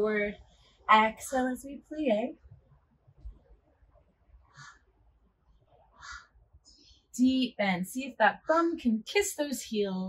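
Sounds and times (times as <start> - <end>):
crow cawing: 4.5 - 4.9, 6.0 - 6.4.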